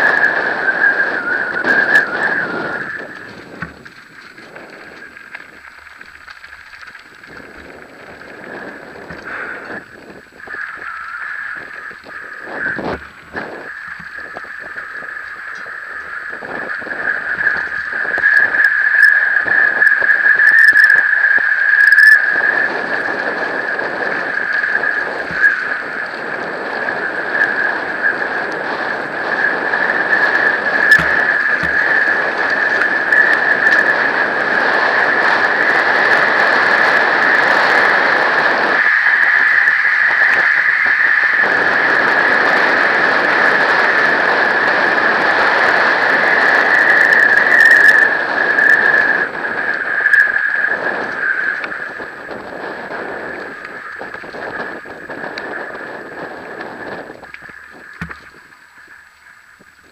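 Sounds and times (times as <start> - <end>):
high-pitched squeal: 0.0 - 5.8, 6.9 - 59.6
bike tyres on gravel: 0.0 - 59.9.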